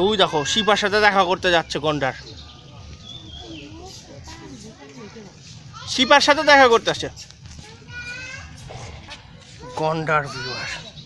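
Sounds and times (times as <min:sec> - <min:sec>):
chatter of visitors and children: 0:00.0 - 0:11.0.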